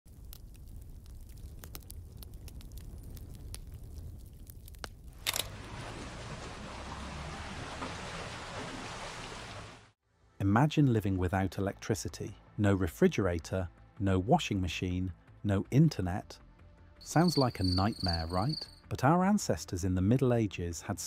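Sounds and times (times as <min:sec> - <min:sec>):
fire crackling: 0:00.1 - 0:06.9, 0:17.0 - 0:18.8
water splashing off water wheel: 0:05.2 - 0:10.0.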